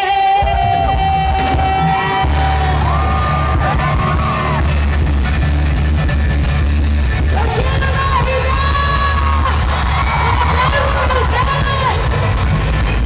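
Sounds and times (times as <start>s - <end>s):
woman singing: 0.0s - 3.0s
live band music: 0.0s - 13.0s.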